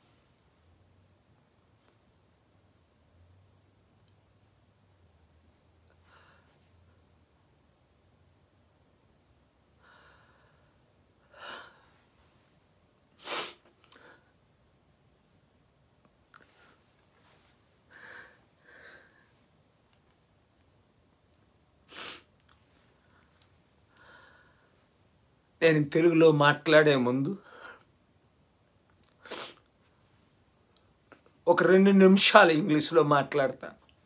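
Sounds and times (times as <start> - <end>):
man's emotional breath: 9.8 - 12.0, 17.9 - 19.4, 23.9 - 24.8
man sniffing: 13.2 - 14.2, 21.9 - 22.3, 29.2 - 29.7.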